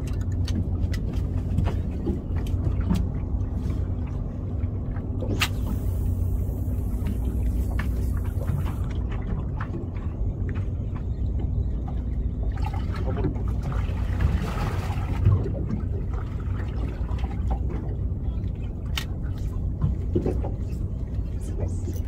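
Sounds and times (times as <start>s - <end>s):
outboard motor idling: 0.0s - 22.0s
water splashing against hull: 0.0s - 22.0s.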